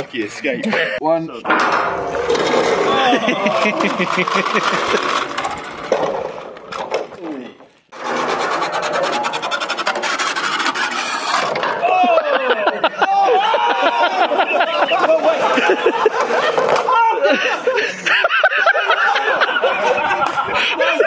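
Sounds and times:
men laughing and shouting: 0.4s - 1.3s, 2.5s - 5.7s, 11.6s - 21.0s
small wheeled racer rattling: 2.0s - 11.9s.

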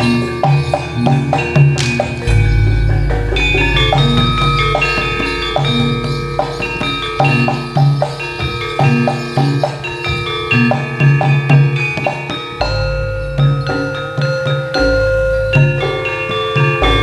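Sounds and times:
low drum beat: 0.0s - 11.8s
metallophones and gongs ringing: 0.0s - 17.0s.

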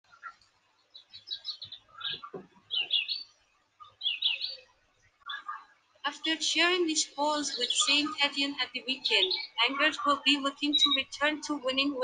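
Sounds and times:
bird chirping: 0.1s - 12.0s.

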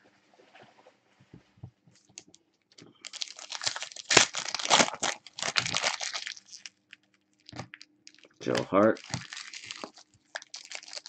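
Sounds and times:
foil wrapper tearing and crinkling: 3.0s - 11.0s.

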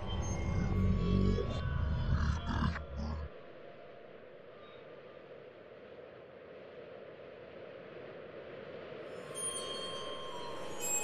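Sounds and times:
deep rumbling sound effect: 0.0s - 3.4s.

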